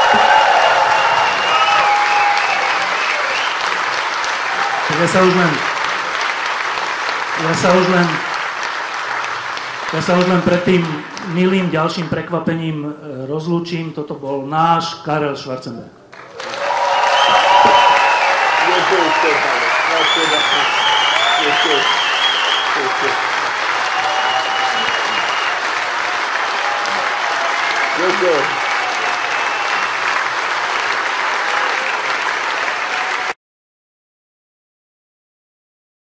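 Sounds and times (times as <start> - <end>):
whistles: 0.0 - 3.8, 16.9 - 23.2, 23.8 - 25.7, 26.4 - 30.1
people cheering: 0.0 - 11.7, 16.1 - 33.4
audience applauding: 0.0 - 12.0, 16.1 - 33.4.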